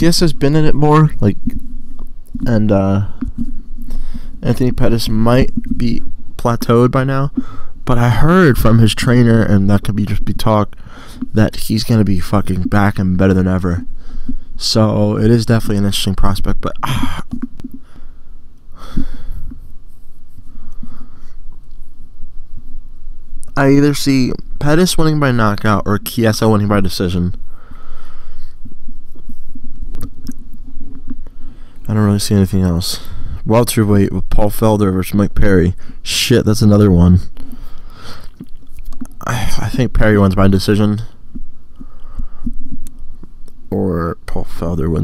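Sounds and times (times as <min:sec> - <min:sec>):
microphone handling noise: 0:00.0 - 0:06.7
faint hum: 0:00.0 - 0:45.0
breath: 0:03.1 - 0:04.4, 0:07.4 - 0:07.8, 0:10.8 - 0:11.3, 0:14.0 - 0:14.6, 0:17.8 - 0:19.6, 0:20.5 - 0:21.4, 0:27.5 - 0:28.6, 0:31.3 - 0:31.9, 0:33.0 - 0:33.4, 0:37.4 - 0:38.4, 0:41.8 - 0:42.6
soft low thumps: 0:38.3 - 0:43.4.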